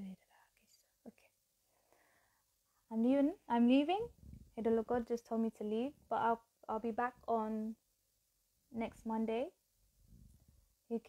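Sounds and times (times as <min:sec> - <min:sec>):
faint breathing: 0:01.6 - 0:02.8.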